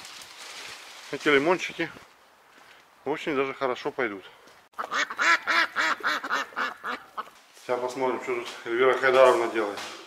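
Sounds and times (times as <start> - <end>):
duck quacking: 4.8 - 7.3.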